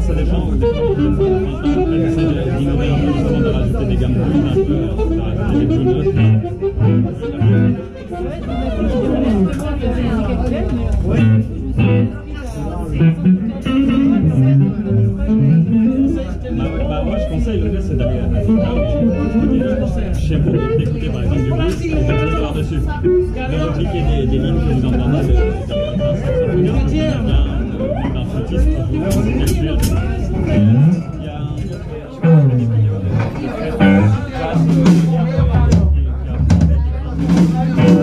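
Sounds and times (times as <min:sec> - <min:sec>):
drums: 0:00.0 - 0:08.6, 0:10.6 - 0:12.2, 0:13.0 - 0:16.2, 0:25.2 - 0:38.0
electric guitar: 0:00.0 - 0:09.8, 0:10.5 - 0:35.7, 0:36.4 - 0:38.0
bass guitar: 0:00.0 - 0:38.0
voices over music: 0:00.0 - 0:38.0.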